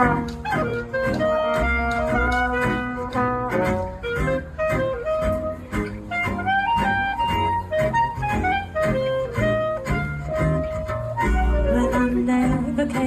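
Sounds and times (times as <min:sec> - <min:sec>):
clarinet melody: 0:00.0 - 0:13.0
double bass: 0:00.0 - 0:13.0.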